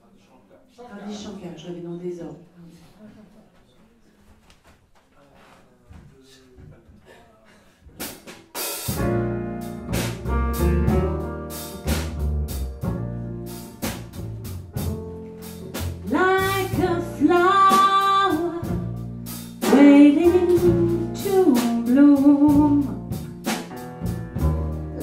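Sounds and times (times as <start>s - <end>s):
drum kit and cymbals: 8.0s - 25.0s
piano: 8.5s - 25.0s
upright double bass: 8.9s - 25.0s
woman singing: 16.0s - 18.9s, 19.6s - 23.1s.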